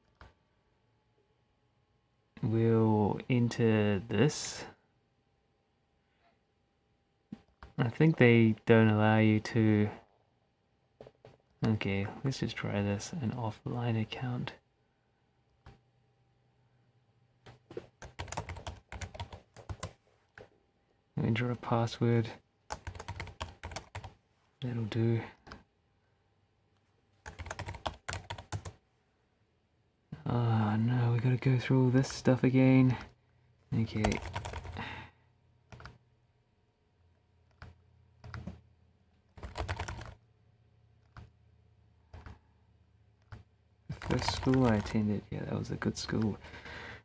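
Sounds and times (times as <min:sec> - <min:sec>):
laptop keyboard typing: 0:17.5 - 0:20.5, 0:22.7 - 0:24.2, 0:27.2 - 0:28.8, 0:33.8 - 0:34.8, 0:35.7 - 0:36.0, 0:37.5 - 0:38.6, 0:39.2 - 0:40.2, 0:41.0 - 0:41.4, 0:42.1 - 0:42.4, 0:43.2 - 0:45.0.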